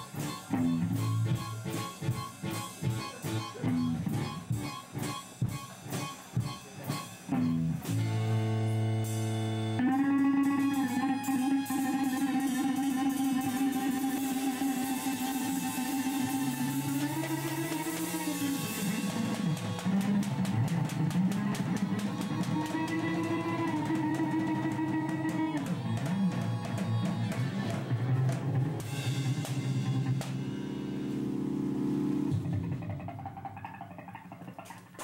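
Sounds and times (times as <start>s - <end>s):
drum kit: 0.0s - 35.0s
live band playing: 0.0s - 35.0s.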